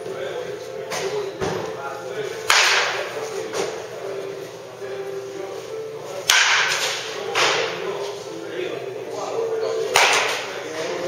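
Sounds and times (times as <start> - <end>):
bat cracking ball: 2.5 - 3.0, 6.3 - 7.8, 9.9 - 10.5.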